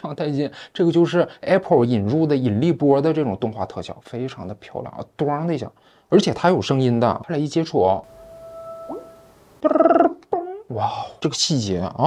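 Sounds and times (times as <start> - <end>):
soft electronic tone with upward swoop: 8.0 - 10.0.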